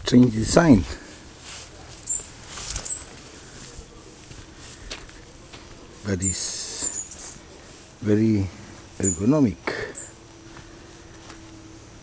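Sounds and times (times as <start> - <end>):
soft rustle: 0.2 - 9.3
small bird chirping: 2.0 - 3.8, 5.9 - 7.4, 8.8 - 10.2.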